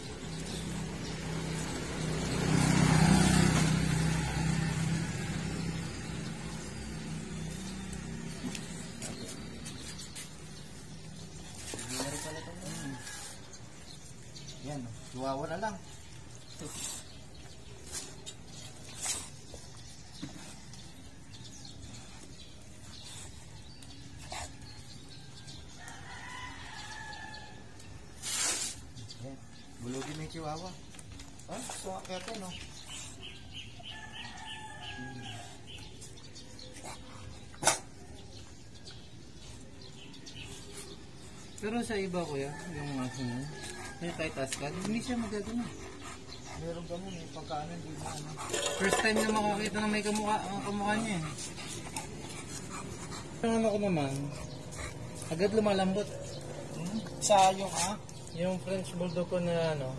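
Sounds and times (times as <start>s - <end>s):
motor vehicle passing: 0.0s - 59.9s
rooster crowing: 25.8s - 27.7s, 33.9s - 35.6s.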